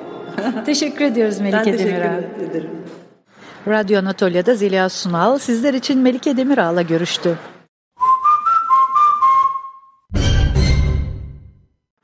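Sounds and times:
whistled melody: 8.0s - 10.4s.

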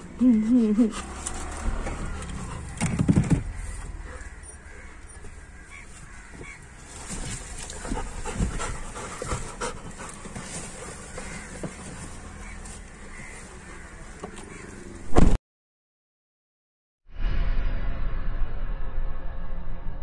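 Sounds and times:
dog panting: 7.5s - 12.0s.

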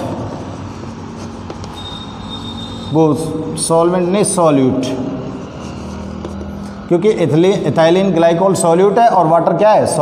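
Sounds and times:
chalk scratching on blackboard: 0.0s - 3.0s, 5.2s - 6.8s
thin high-pitched tone: 1.7s - 3.3s.

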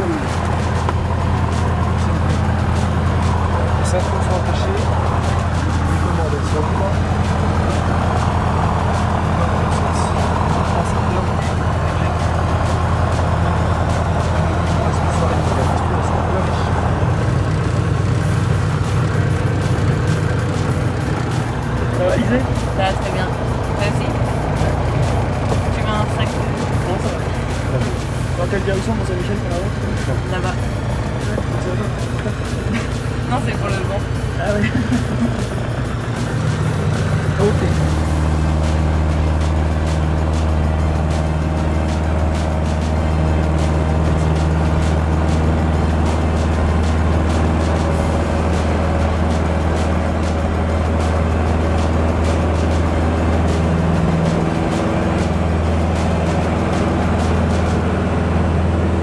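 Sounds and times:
aircraft piston engine: 0.0s - 59.0s
music: 0.0s - 59.0s.

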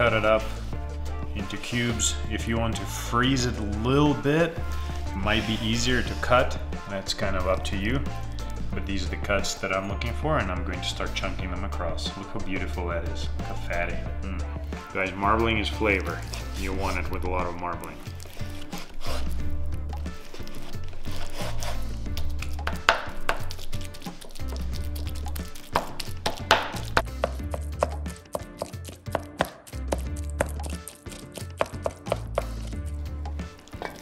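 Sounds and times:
background music: 0.0s - 34.0s
knife chopping on wooden board: 22.4s - 23.6s, 25.6s - 32.7s.

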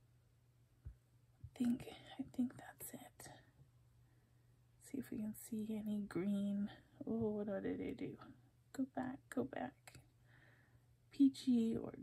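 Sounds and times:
woman speaking quietly: 1.6s - 3.4s, 4.8s - 10.0s, 11.2s - 12.0s.

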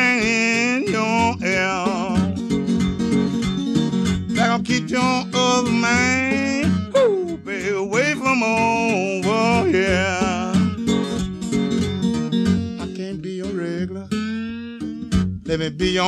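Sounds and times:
acoustic blues guitar: 0.0s - 16.0s.

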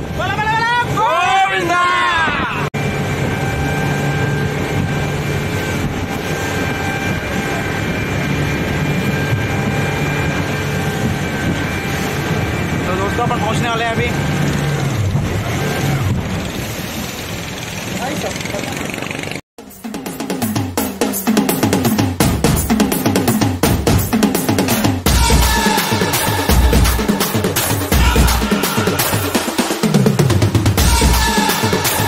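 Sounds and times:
rushing wind: 0.0s - 19.4s
outboard motor droning: 2.8s - 19.4s
person calling out: 27.9s - 29.4s.

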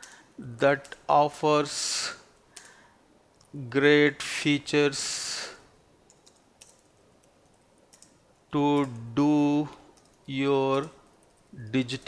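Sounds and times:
faint keyboard typing: 0.0s - 1.1s, 2.3s - 3.6s, 6.0s - 12.0s.

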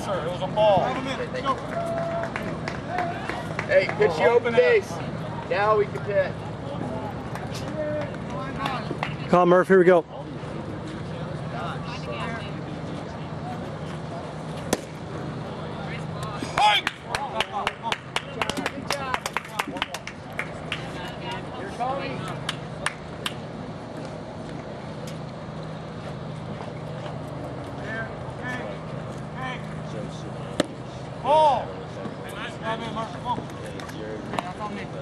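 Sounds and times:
steady low hum: 0.0s - 35.0s
crowd clapping and shouting: 1.2s - 4.7s, 7.2s - 9.4s, 16.2s - 21.5s, 22.2s - 23.5s
sharp bat pop: 14.7s - 15.0s.

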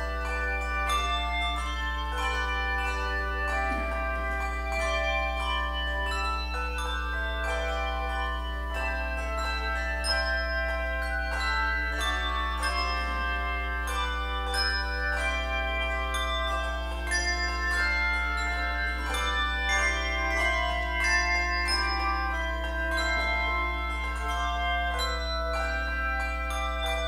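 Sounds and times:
handbell choir playing: 0.0s - 27.0s.

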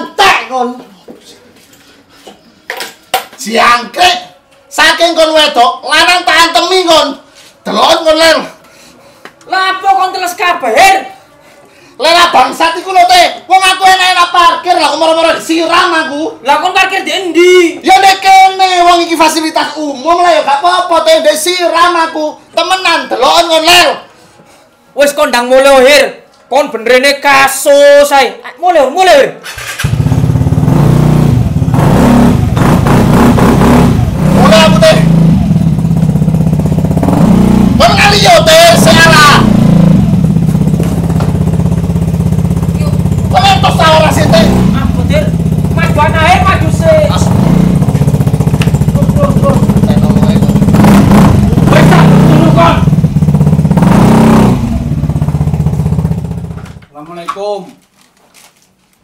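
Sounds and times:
scooter engine droning: 29.6s - 56.8s.

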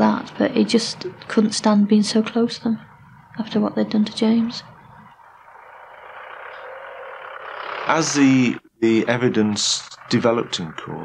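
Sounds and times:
motor vehicle running: 0.0s - 11.0s.

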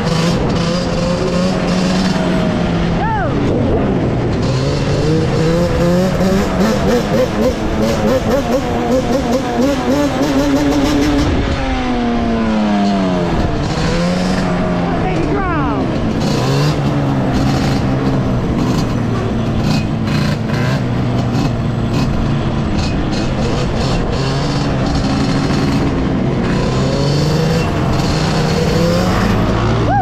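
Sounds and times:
quad engine revving: 0.0s - 30.0s.

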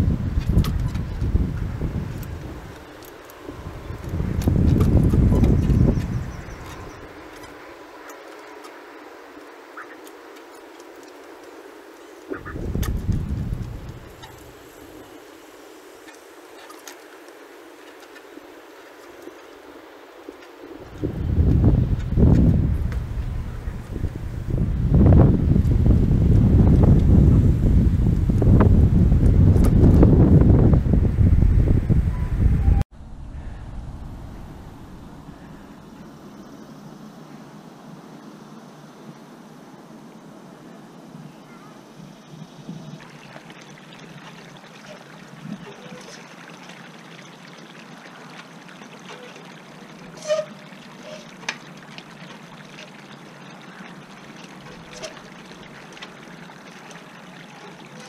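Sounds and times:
wind buffeting microphone: 0.0s - 8.1s, 11.2s - 15.2s, 19.6s - 37.0s.

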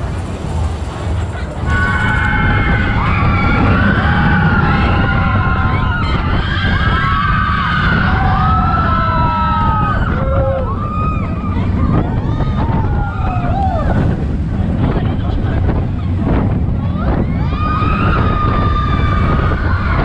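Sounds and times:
roller coaster cars rumbling: 0.0s - 20.0s
wind on microphone: 0.0s - 20.0s
riders screaming and whooping: 1.6s - 14.3s, 15.9s - 20.0s.

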